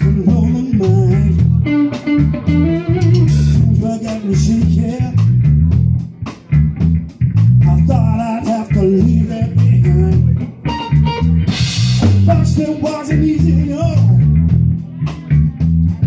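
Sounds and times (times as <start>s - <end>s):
drums: 0.0s - 16.0s
electric bass guitar: 0.0s - 16.0s
electric guitar: 0.0s - 16.0s.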